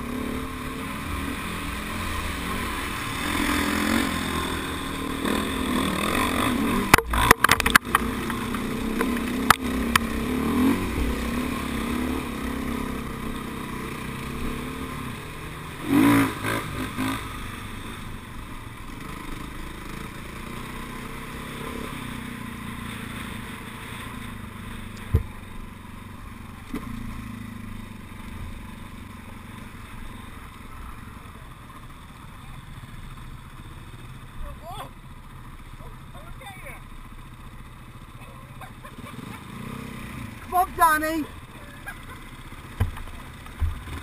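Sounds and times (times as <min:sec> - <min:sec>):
dirt bike engine running: 0:00.0 - 0:44.0.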